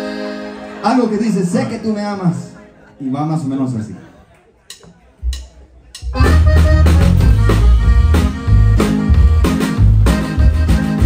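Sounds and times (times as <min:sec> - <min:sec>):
band with button accordion: 0:00.0 - 0:01.9, 0:05.2 - 0:11.0.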